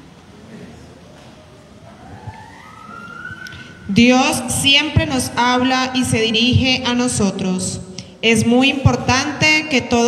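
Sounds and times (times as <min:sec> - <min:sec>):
siren winding up: 0:01.9 - 0:03.9.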